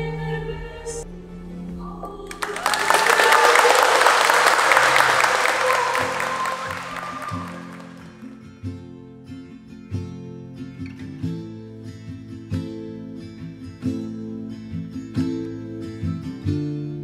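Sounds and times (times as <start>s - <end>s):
crowd applauding: 2.3s - 8.4s.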